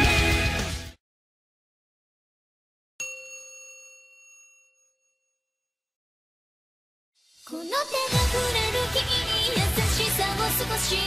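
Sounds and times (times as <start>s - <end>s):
bell-like chime ringing: 3.0s - 5.9s.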